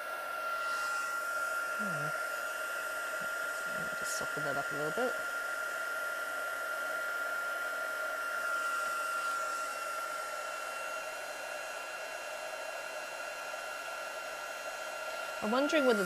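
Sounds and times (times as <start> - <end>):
heat tool blowing with high whine: 0.0 - 16.0.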